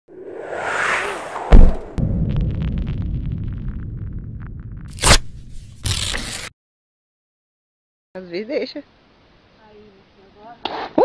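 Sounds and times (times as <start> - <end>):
rising whoosh: 0.0 - 5.0
low rumble: 0.1 - 5.6
loud sharp hit: 0.4 - 5.5.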